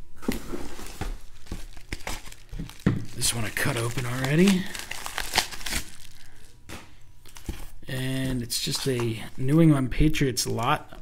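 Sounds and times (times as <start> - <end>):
plastic mailer crinkling: 0.6 - 6.6
sharp plastic crackles: 1.1 - 7.7.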